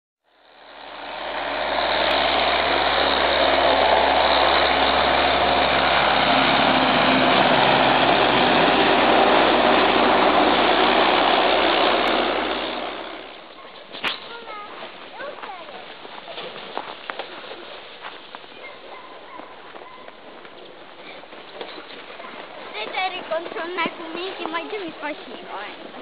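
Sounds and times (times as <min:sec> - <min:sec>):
tractor diesel engine running: 0:00.3 - 0:26.0.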